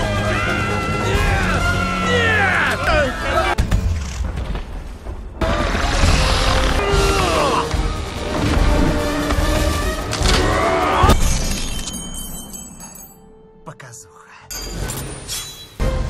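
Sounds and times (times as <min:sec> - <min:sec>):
dramatic film score: 0:00.0 - 0:16.0.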